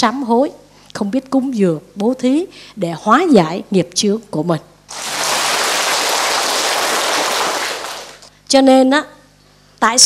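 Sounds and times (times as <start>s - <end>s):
audience applauding: 4.9s - 8.3s.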